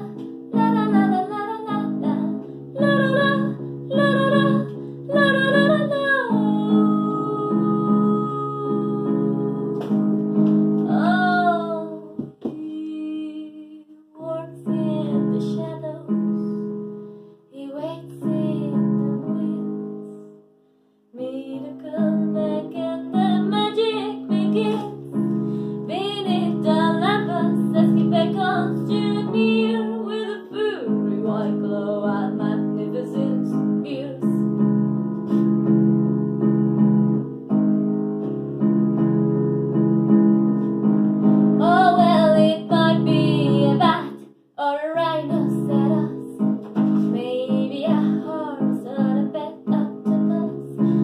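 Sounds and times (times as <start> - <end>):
woman singing jazzy song: 0.0 - 10.0, 10.9 - 16.6, 17.6 - 19.9, 21.2 - 34.5, 41.6 - 51.0
keyboard piano accompaniment: 0.0 - 12.7, 14.4 - 20.6, 21.5 - 51.0.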